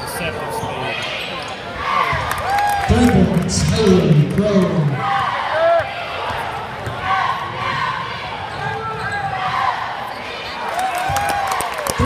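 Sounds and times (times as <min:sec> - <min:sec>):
spectators talking: 0:00.0 - 0:12.0.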